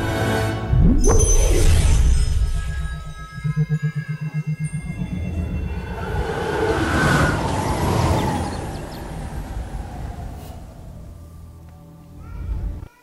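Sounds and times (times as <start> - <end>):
blast shockwave rumble: 0.7 - 3.5
music with pulsing low note: 0.7 - 6.0.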